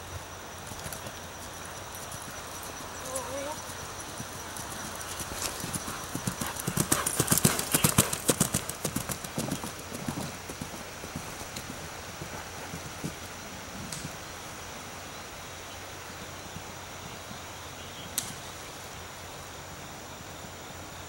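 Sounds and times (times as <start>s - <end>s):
horse hoofbeats on turf: 0.6s - 14.2s.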